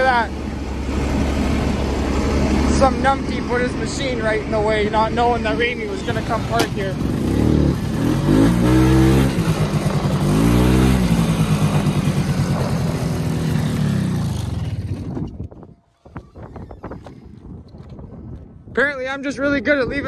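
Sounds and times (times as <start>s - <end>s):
snowmobile engine revving: 0.0s - 15.1s.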